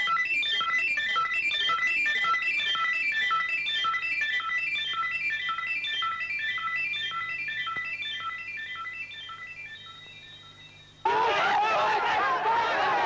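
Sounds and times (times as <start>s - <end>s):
high beep-like electronic notes: 0.0s - 11.0s.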